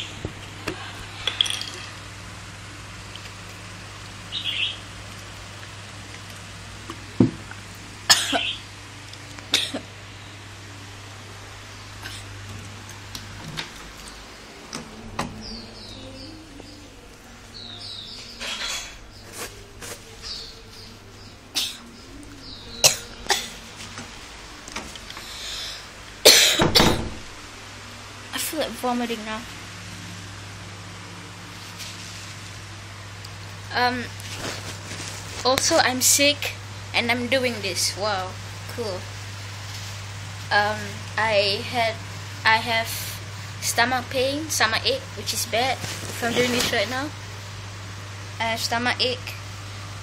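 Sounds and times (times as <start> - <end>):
low steady hum: 0.0 - 50.0
person coughing: 8.1 - 8.5, 9.5 - 9.9, 12.0 - 12.3, 21.5 - 21.9, 22.8 - 23.6, 26.2 - 26.8.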